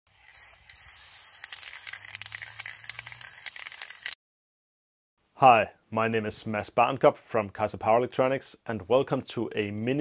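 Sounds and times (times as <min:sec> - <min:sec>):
spray paint can hissing: 0:00.1 - 0:04.2.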